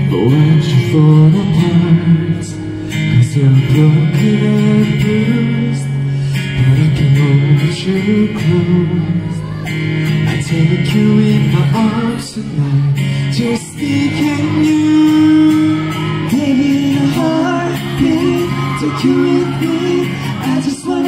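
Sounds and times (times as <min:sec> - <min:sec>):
acoustic guitars strummed and picked: 0:00.0 - 0:21.0
man singing: 0:00.0 - 0:21.0.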